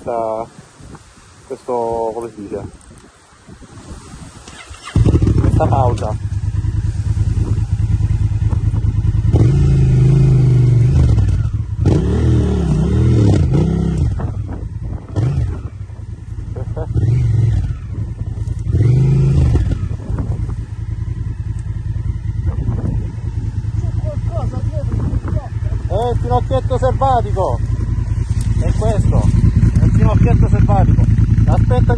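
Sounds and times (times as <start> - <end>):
motorcycle engine idling and revving: 2.2 - 31.9.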